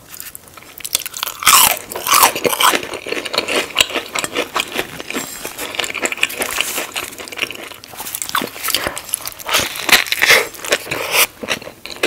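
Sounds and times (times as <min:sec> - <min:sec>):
wet chewing: 0:00.2 - 0:12.0.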